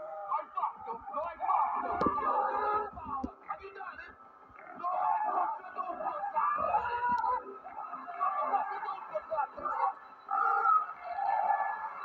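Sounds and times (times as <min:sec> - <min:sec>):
pig screeching: 0:01.1 - 0:02.9, 0:04.6 - 0:09.0, 0:09.6 - 0:12.0.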